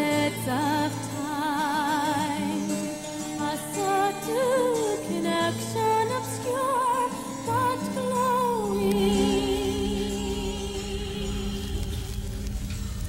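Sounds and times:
person singing with vibrato: 0.0s - 12.8s
sustained accompaniment: 8.6s - 13.0s.

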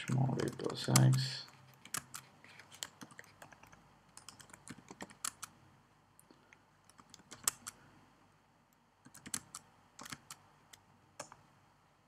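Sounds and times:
man speaking: 0.0s - 1.5s
keyboard keystrokes: 0.0s - 5.5s, 6.9s - 7.8s, 9.1s - 10.4s.

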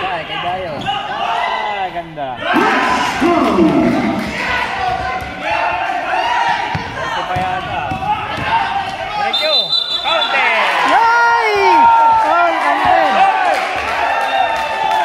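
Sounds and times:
people shouting: 2.4s - 7.2s, 10.0s - 15.0s
basketball bouncing on court: 3.6s - 5.5s, 6.5s - 9.2s.

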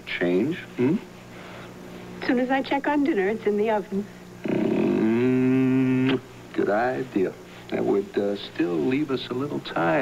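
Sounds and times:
man humming: 0.8s - 1.1s, 4.4s - 6.3s.

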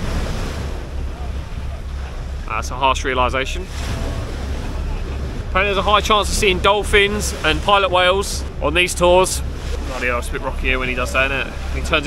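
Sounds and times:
water rushing along boat hull: 0.0s - 12.0s
wind buffeting microphone: 0.0s - 12.0s.

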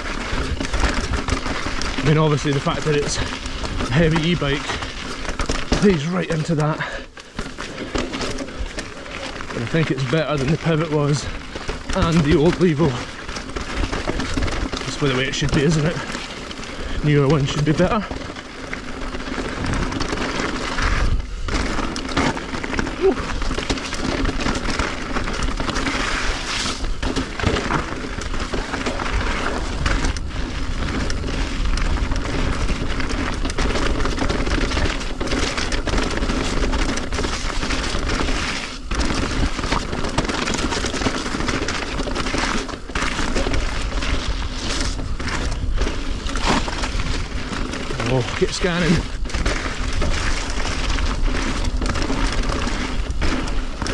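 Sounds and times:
bike parts rattling: 0.0s - 53.9s
bike tyres crunching on gravel: 0.0s - 53.9s.

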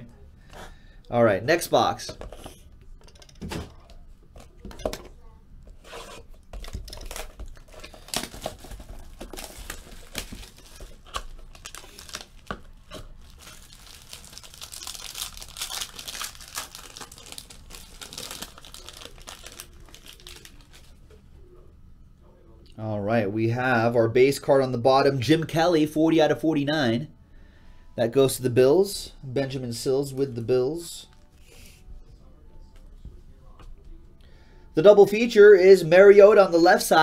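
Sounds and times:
wrapper crinkling and tearing: 6.6s - 21.0s.

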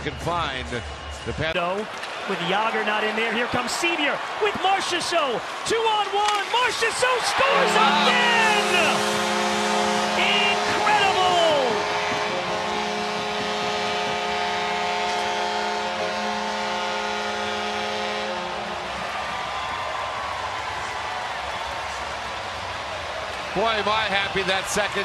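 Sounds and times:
crowd cheering: 0.0s - 25.0s
goal horn: 7.2s - 19.0s.

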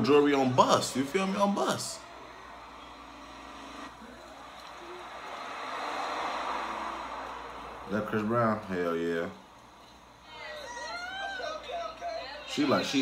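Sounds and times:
car driving rushing noise: 1.7s - 10.2s.

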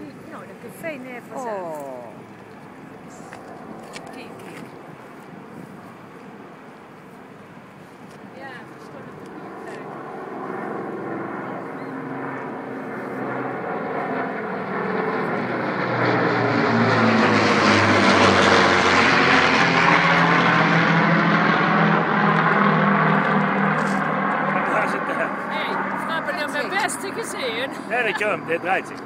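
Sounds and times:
propeller plane flying overhead: 0.0s - 29.0s.

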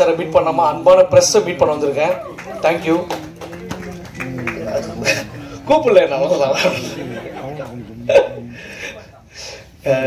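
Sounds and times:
people laughing: 3.6s - 5.6s, 6.3s - 9.6s.

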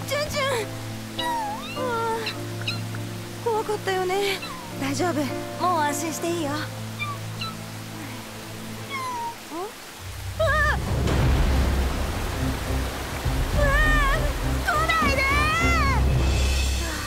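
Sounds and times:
background music: 0.0s - 17.0s
baby bird chirping cries: 1.1s - 3.0s, 4.4s - 4.8s, 7.0s - 7.7s, 8.8s - 9.6s
low rumble: 10.7s - 14.7s.

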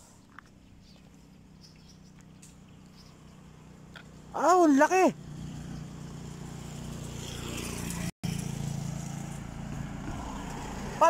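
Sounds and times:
car driving past: 5.2s - 11.0s.

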